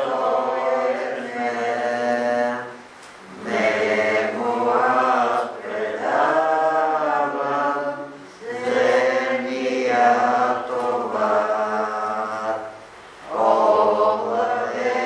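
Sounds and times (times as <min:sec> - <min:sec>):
slow religious chant: 0:00.0 - 0:15.0.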